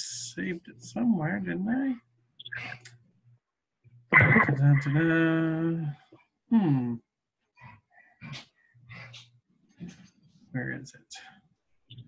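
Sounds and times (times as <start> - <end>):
woman muttering and humming: 6.5 - 7.0.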